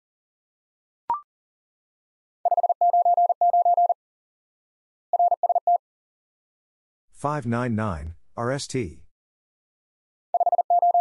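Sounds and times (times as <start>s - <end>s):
morse code tone: 2.5s - 4.0s, 10.4s - 11.0s.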